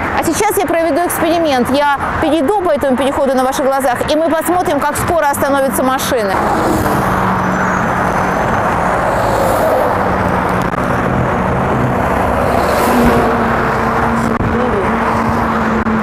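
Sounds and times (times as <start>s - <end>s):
cars passing: 0.0s - 16.0s
engine hum: 0.9s - 16.0s.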